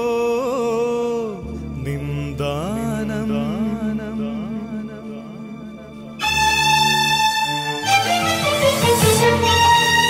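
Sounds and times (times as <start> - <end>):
sliding hymn melody: 0.1 - 10.0.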